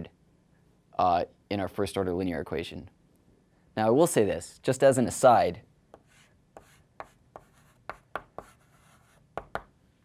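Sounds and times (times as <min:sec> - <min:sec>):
chalk tapping and scratching: 0:05.9 - 0:09.8.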